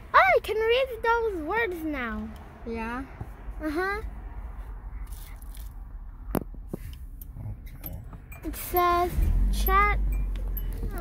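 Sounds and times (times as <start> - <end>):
car cabin rumble: 6.2 - 11.0.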